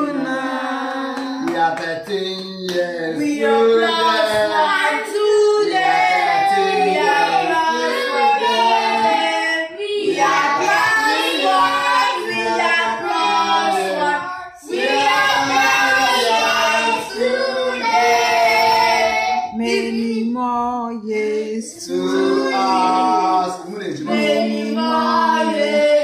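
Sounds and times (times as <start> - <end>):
children and woman singing: 3.2 - 26.0.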